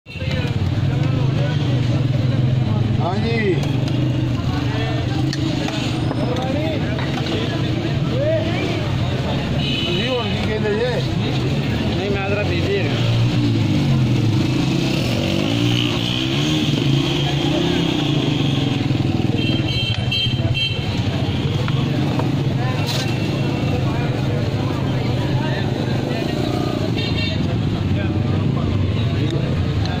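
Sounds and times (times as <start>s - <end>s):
motorcycles and cars passing: 0.1s - 30.0s
people talking: 0.1s - 30.0s
vehicle horn tooting: 9.6s - 10.4s, 18.2s - 21.6s.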